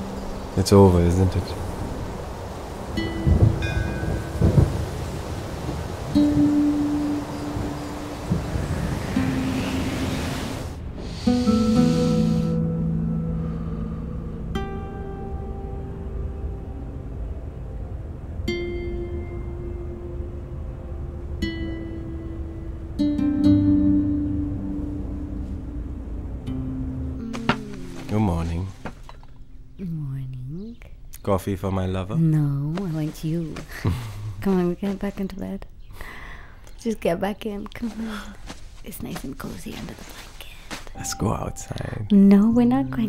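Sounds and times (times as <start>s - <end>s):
rain falling: 0.0s - 12.6s, 24.6s - 29.5s, 32.7s - 35.2s
low thunder rolls: 1.4s - 11.0s
held musical notes: 10.8s - 29.8s, 41.0s - 43.0s
soft plucked string notes: 11.3s - 17.1s, 18.4s - 29.8s.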